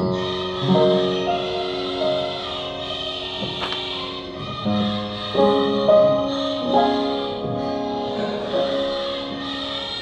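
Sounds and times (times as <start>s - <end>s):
slow piano: 0.0s - 10.0s.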